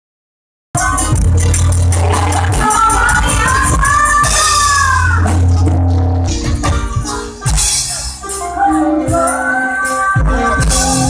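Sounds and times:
fast high percussion: 0.8 - 8.4
deep held bass: 0.8 - 8.5
keyboard melody: 0.8 - 11.0
live band playing through pa: 0.8 - 11.0.

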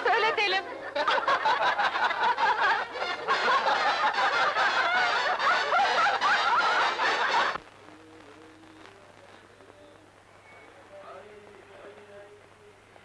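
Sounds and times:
group laughing loudly: 0.7 - 7.6.

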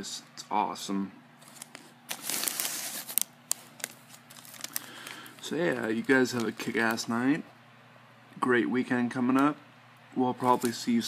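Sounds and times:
sharp wrapper crackles: 1.4 - 7.1, 10.4 - 10.8
foil wrapper crinkling: 1.4 - 7.2, 10.4 - 11.0.

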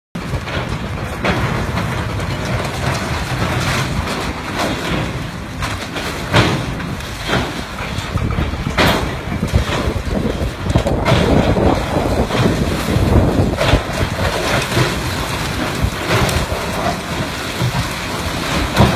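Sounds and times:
excavator diesel engine running: 0.2 - 18.9
falling concrete crashing: 0.2 - 18.9.

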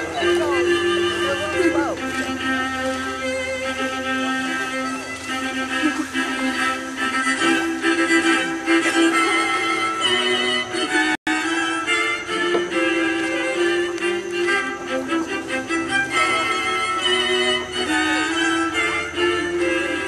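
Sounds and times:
string music led by violin: 0.0 - 20.0.

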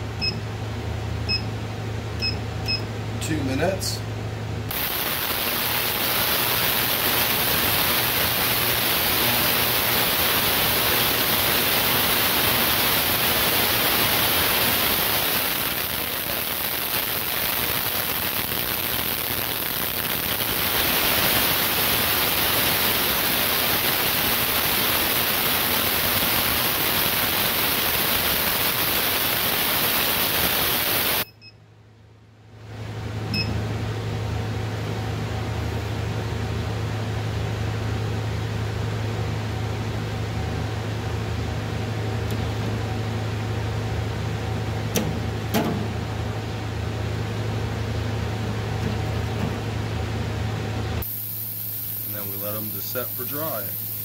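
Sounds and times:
ultrasonic cleaner hissing crackle: 4.7 - 31.3, 50.9 - 54.0.

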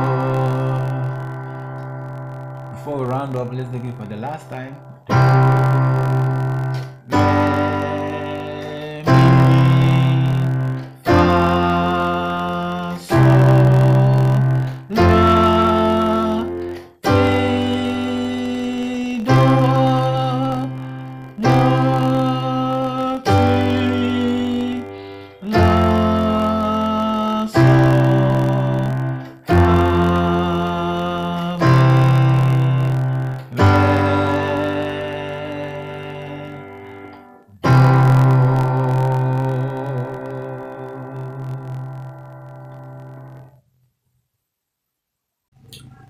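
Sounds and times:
piano chords on keyboard: 0.0 - 43.6.

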